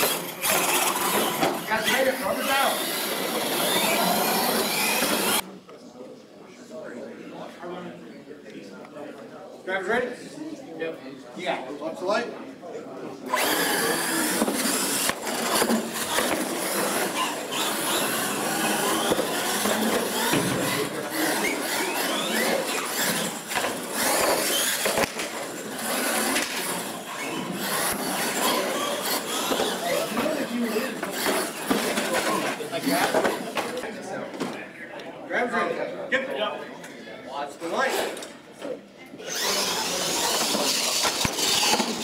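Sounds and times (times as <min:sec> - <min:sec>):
toy trucks knocking and clattering: 0:00.0 - 0:02.0, 0:02.7 - 0:05.4, 0:13.3 - 0:33.8, 0:39.2 - 0:42.0
electric motor whine: 0:02.6 - 0:05.4.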